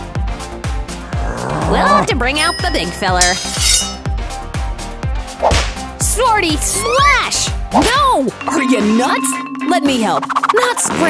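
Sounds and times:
sword being drawn: 3.2 - 4.0.

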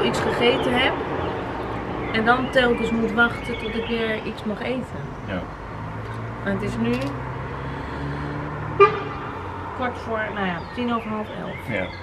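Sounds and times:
vehicle engine running: 0.0 - 12.0
vehicle horn toot: 8.8 - 9.4.

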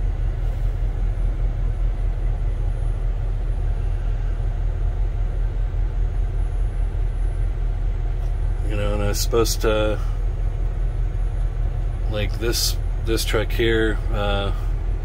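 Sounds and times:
diesel truck engine idling: 0.0 - 15.0.

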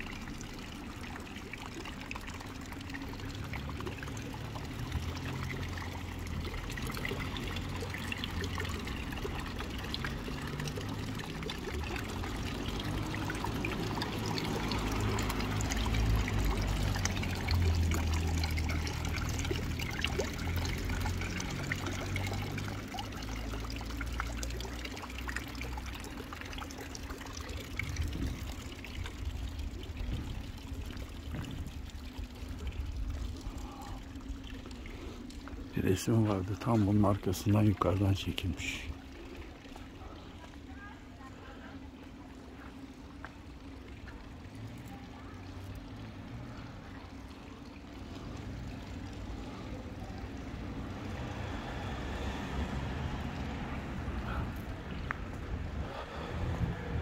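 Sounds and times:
running water trickling and pouring: 0.0 - 57.0.

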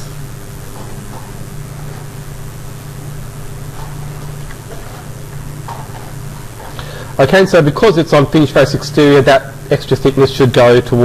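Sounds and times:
constant hiss: 0.0 - 11.0
steady low hum: 0.0 - 11.0.

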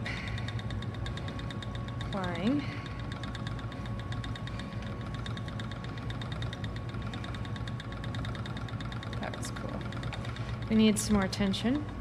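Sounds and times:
spinning wheel whirring and ticking: 0.0 - 12.0.

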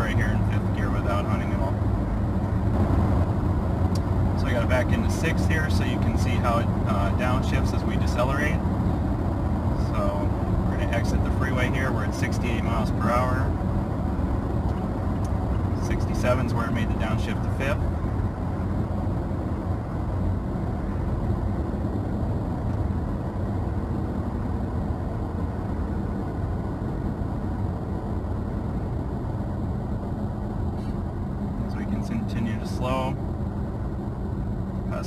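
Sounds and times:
road and engine noise in cab: 0.0 - 35.0.

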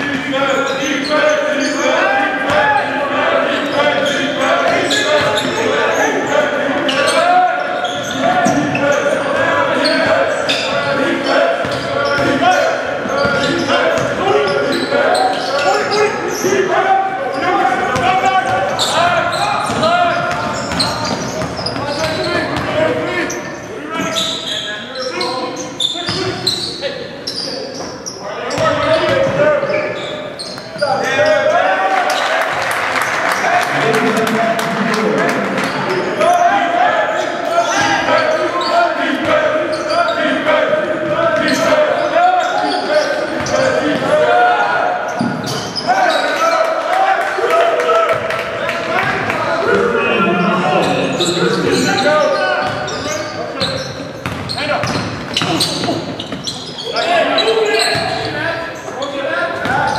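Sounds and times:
players shouting: 0.0 - 27.0, 28.2 - 59.9.

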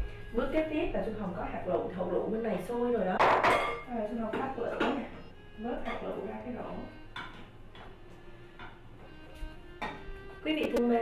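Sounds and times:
utensil knocking against pot: 7.2 - 7.9.

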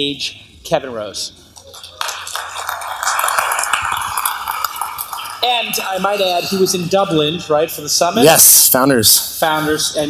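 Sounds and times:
audience applause: 1.7 - 6.4.

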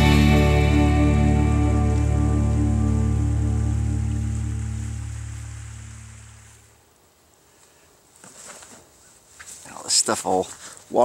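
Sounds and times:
held music chord: 0.0 - 6.6.

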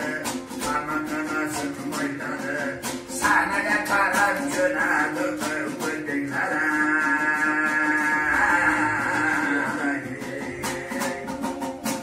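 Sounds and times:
plucked two-string lute: 0.0 - 12.0.

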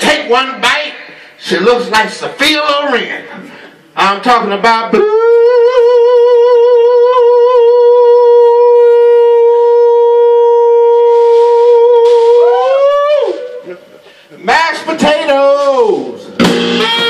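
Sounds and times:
man singing a long high note: 4.8 - 13.6.

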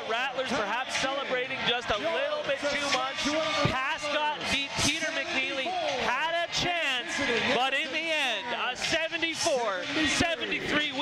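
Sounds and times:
excited voices talking and shouting: 0.0 - 11.0.

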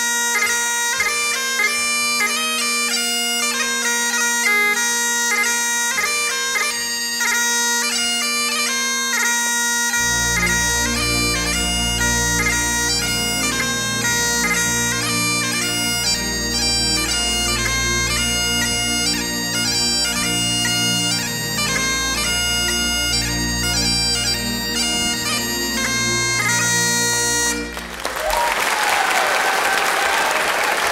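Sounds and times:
bagpipe dance tune with drones: 0.0 - 28.6
low bass accompaniment: 10.0 - 28.0
audience applause: 27.6 - 30.9.

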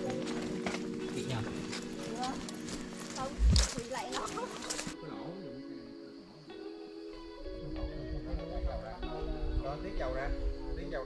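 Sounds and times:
footsteps on dirt path: 0.0 - 5.0
background music with held notes: 0.0 - 11.0.

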